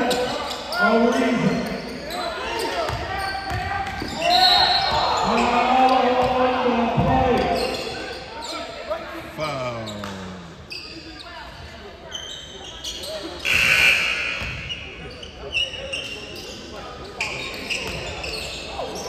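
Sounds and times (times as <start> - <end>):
players and spectators talking: 0.0 - 19.0
basketball bouncing on wooden court: 2.9 - 4.1.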